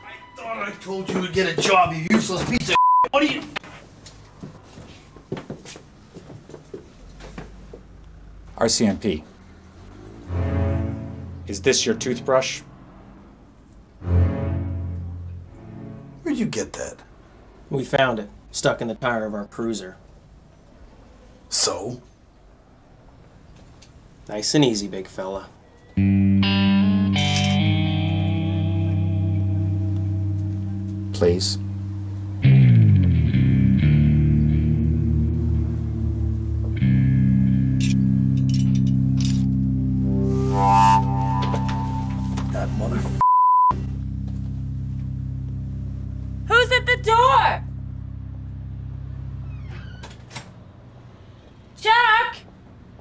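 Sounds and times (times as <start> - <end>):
distorted electric guitar chords: 10.2 - 12.3, 26.0 - 49.4
engine-like low hum: 27.8 - 51.6.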